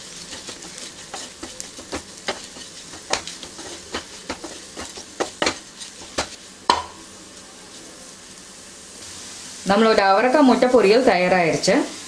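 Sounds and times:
spatula scraping frying pan: 0:00.0 - 0:06.6
soft frying sizzle: 0:00.0 - 0:12.0
loud knock on pan: 0:06.7 - 0:07.0.

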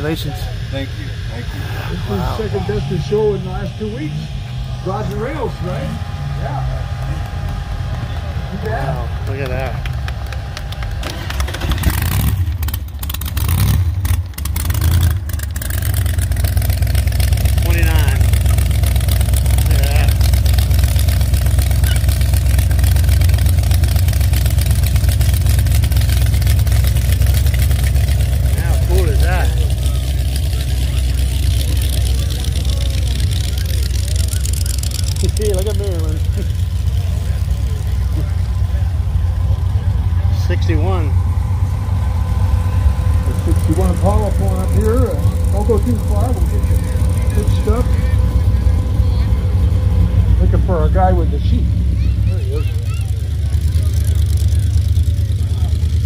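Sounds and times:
car engine low rumble: 0:00.0 - 0:56.0
sharp exhaust crackles: 0:00.0 - 0:56.0.

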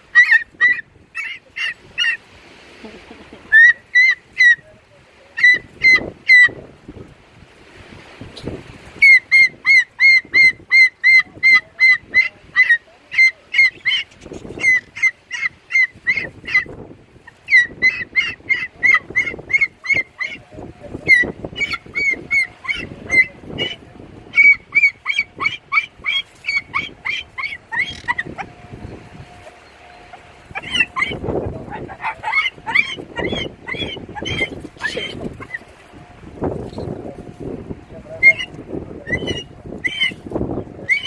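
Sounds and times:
cockatoo squawking: 0:00.0 - 0:02.2, 0:03.0 - 0:04.6, 0:05.4 - 0:06.6, 0:09.0 - 0:35.8, 0:38.2 - 0:41.0.

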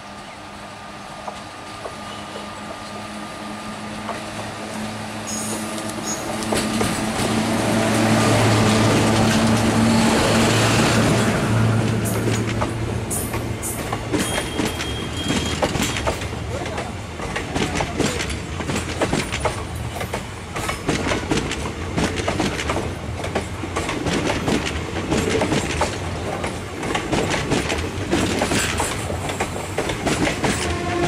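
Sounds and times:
electric locomotive humming: 0:00.0 - 0:31.0
train wheels clattering over rail joints: 0:05.3 - 0:31.0.

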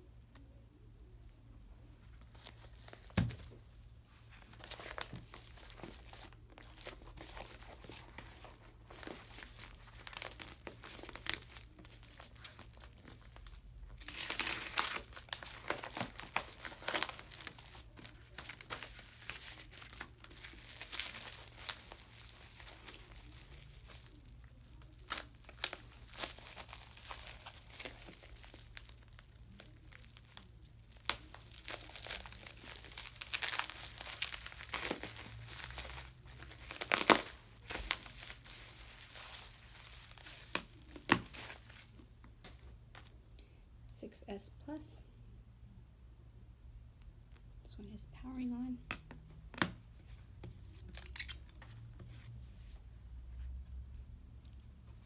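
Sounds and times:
packaging crinkling and tearing: 0:02.3 - 0:42.0.

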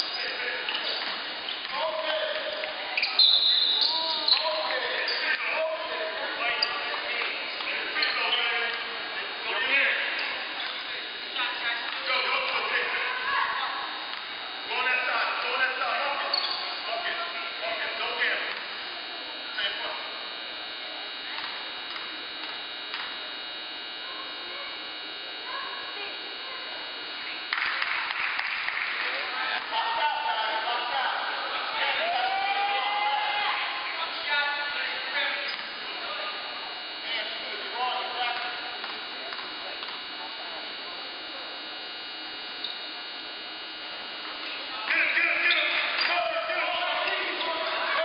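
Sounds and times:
steady hall hum: 0:00.0 - 0:48.0
people shouting: 0:31.9 - 0:33.8.

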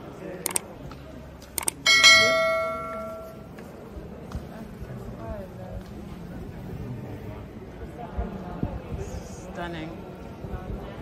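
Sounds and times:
mouse clicks: 0:01.6 - 0:01.8
bright bell ding: 0:01.9 - 0:03.5.

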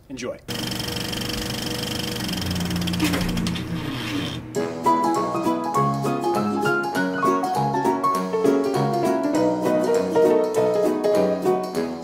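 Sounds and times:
film projector clatter: 0:00.5 - 0:03.8.

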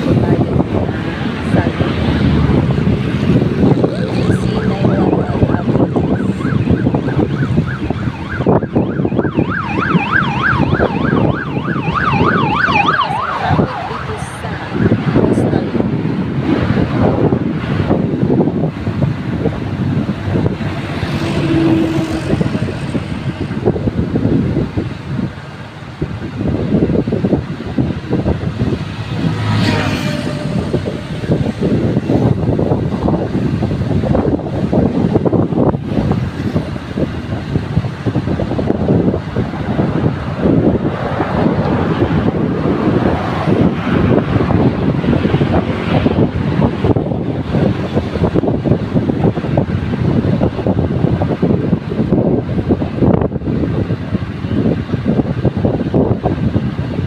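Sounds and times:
road and traffic noise: 0:00.0 - 0:57.0
wind buffeting microphone: 0:00.0 - 0:57.0.

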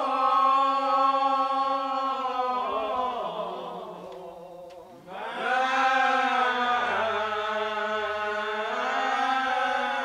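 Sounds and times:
voices singing a hymn: 0:00.0 - 0:10.0.

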